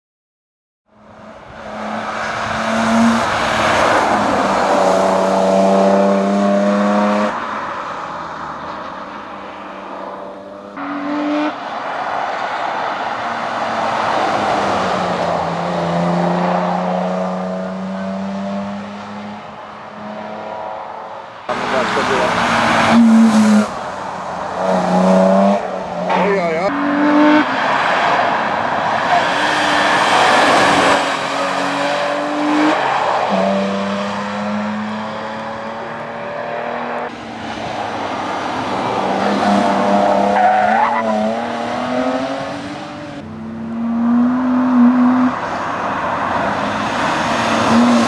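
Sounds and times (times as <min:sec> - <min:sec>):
race car engine revving: 0:01.4 - 0:07.4, 0:13.4 - 0:48.0.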